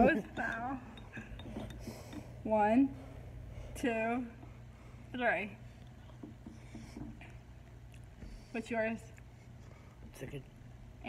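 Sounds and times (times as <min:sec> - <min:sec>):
glass jars clinking: 0:00.0 - 0:02.3.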